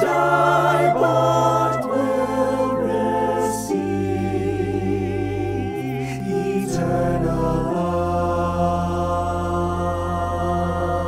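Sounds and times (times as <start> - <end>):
voices holding a sustained chord: 0.0 - 11.0.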